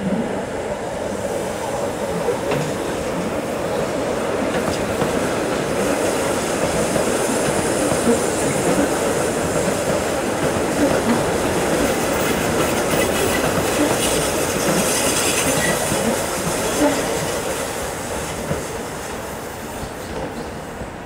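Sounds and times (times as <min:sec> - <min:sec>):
train wheels rumbling on rails: 0:00.0 - 0:21.0.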